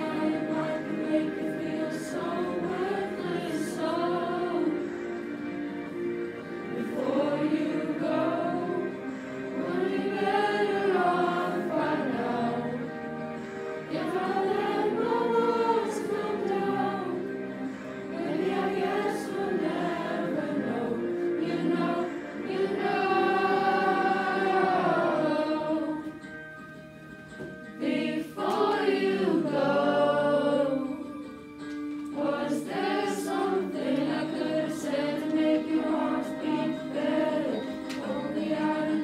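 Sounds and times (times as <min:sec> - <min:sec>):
choir singing in unison: 0:00.0 - 0:26.2, 0:27.8 - 0:31.2, 0:32.1 - 0:39.0
karaoke backing track: 0:00.0 - 0:39.0.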